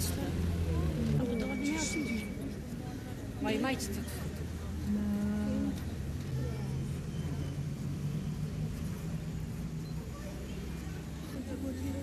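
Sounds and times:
crowd and street noise: 0.0s - 12.0s.

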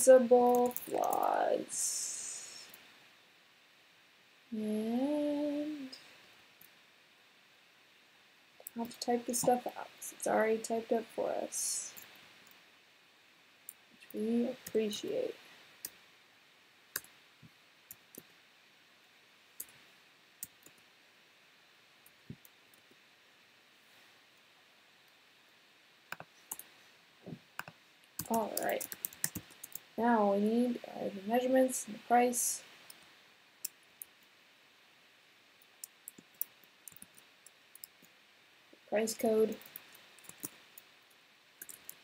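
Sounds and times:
woman humming: 4.5s - 6.0s
faint clicks: 26.1s - 26.7s, 35.6s - 38.2s, 39.5s - 42.0s
computer keyboard keystrokes: 27.6s - 29.8s, 41.6s - 42.0s.

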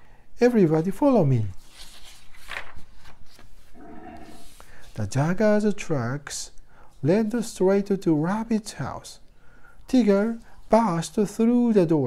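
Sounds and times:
book page turning: 1.5s - 4.6s.

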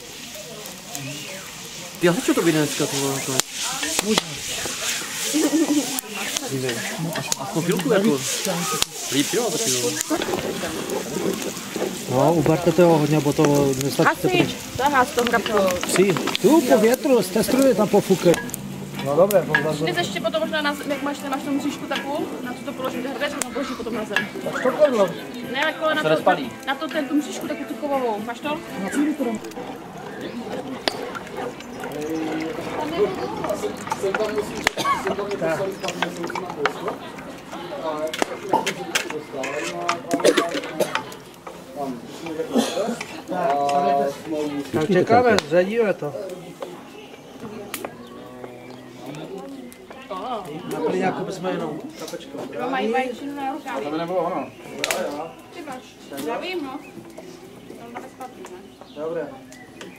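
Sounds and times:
bacon sizzling in a pot: 0.0s - 42.4s
wooden spoons stirring: 0.0s - 50.7s, 51.3s - 59.9s
people talking: 0.0s - 56.9s.

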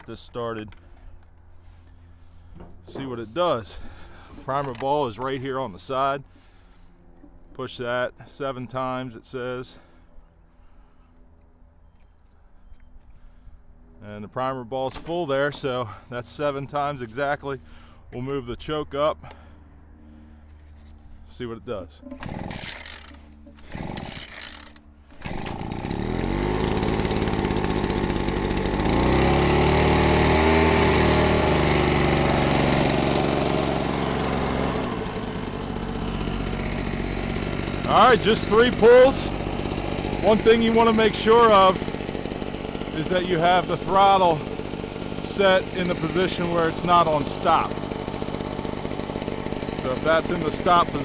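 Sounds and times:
two-stroke blower engine running: 22.1s - 51.0s.

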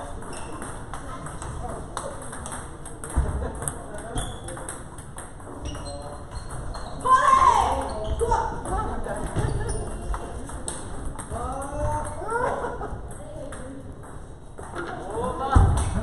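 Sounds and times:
table tennis balls clicking: 0.0s - 12.3s, 13.0s - 15.1s.

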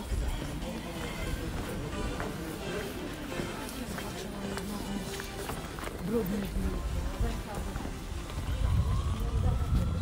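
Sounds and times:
footsteps on cobblestones: 0.0s - 10.0s
people's voices: 0.0s - 10.0s.

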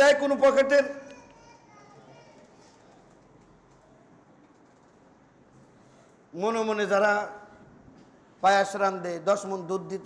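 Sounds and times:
man's amplified voice: 0.0s - 1.1s, 6.3s - 7.6s, 8.4s - 10.0s
faint background voices: 1.0s - 4.9s.

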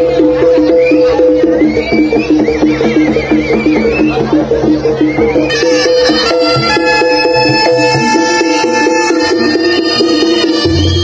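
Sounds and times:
pitched percussion repeating figure: 0.0s - 11.0s
reed wind instrument wavering note: 5.1s - 11.0s.

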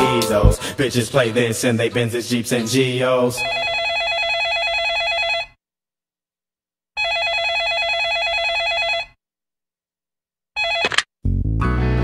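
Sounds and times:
electronic telephone ringing: 3.4s - 5.6s, 7.0s - 9.2s, 10.6s - 11.1s.

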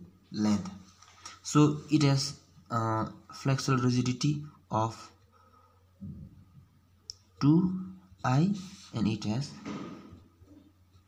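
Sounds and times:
man speaking: 0.0s - 5.2s, 7.4s - 9.7s.

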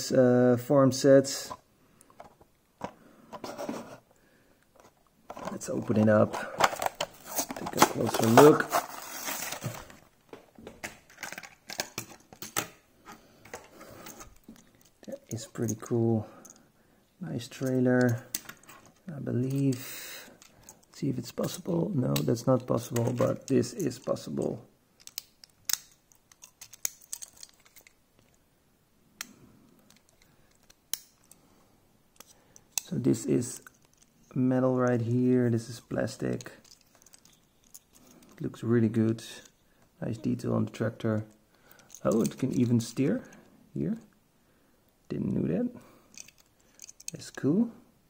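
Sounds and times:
plastic and metal parts clicking: 4.8s - 10.0s, 10.7s - 12.8s, 17.6s - 19.8s, 20.4s - 28.4s, 29.2s - 31.4s, 36.4s - 38.4s, 41.1s - 42.7s, 46.1s - 47.3s.

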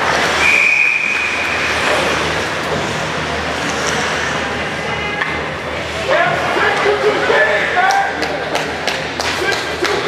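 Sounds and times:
crowd and skates in ice rink: 0.0s - 10.0s
referee whistle: 0.4s - 1.7s.

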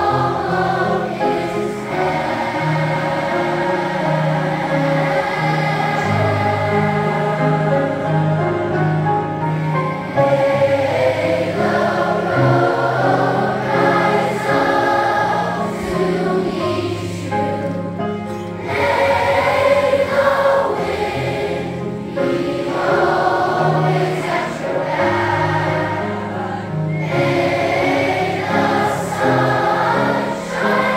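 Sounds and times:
children's choir singing: 0.0s - 30.9s.

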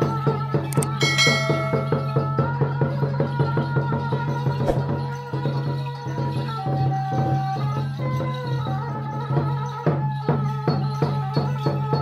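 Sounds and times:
bright bell chime: 0.8s - 2.6s
music with fast beat: 0.8s - 2.8s.

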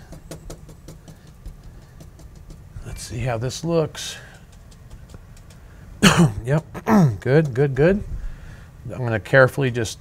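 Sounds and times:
light taps and clicks: 0.0s - 3.1s, 3.9s - 5.8s
low steady hum: 0.0s - 10.0s.

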